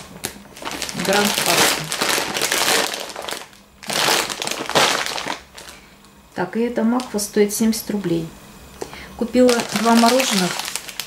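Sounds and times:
plastic bag crinkling: 0.0 - 5.9, 6.9 - 7.4, 9.2 - 11.0.

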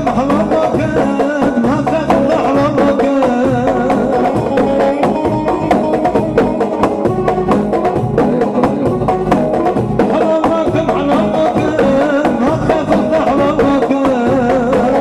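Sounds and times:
fast steady drumbeat: 0.0 - 15.0
ornamented dance melody: 0.0 - 15.0.

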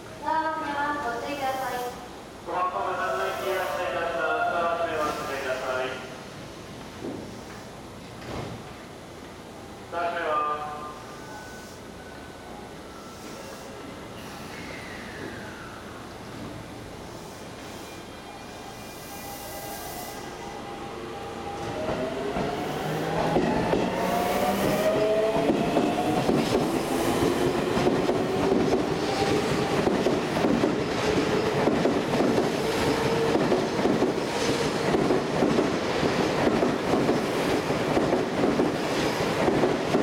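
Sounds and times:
train wheels clattering over rails: 21.6 - 40.0.

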